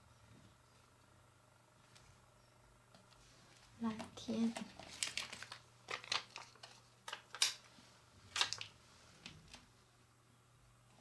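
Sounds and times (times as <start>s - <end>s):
person speaking: 3.7s - 5.0s
plastic bag crinkling: 4.1s - 7.7s, 8.3s - 8.8s.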